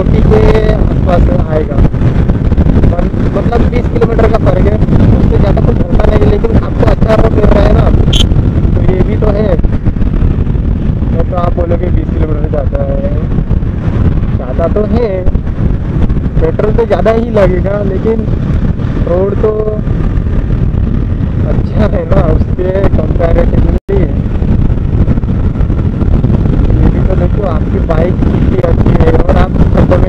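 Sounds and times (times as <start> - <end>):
wind rushing: 0.0 - 30.0.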